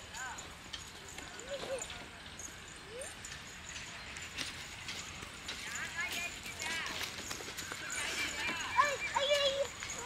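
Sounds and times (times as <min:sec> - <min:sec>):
footsteps on leafy dirt path: 0:03.3 - 0:10.0.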